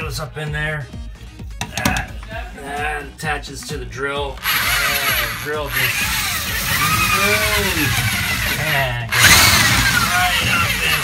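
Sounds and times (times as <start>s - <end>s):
electric drill running: 4.4s - 11.0s.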